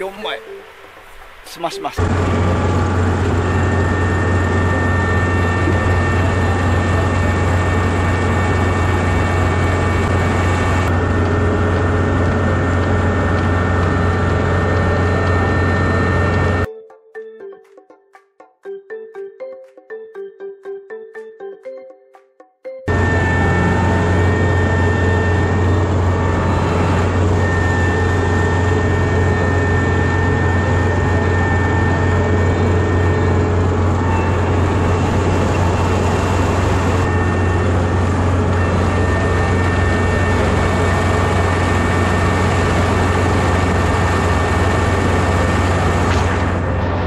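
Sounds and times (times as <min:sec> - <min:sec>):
combine engine drone: 0:00.0 - 0:16.7, 0:22.9 - 0:47.0
steady high whine: 0:00.0 - 0:16.7, 0:22.9 - 0:47.0.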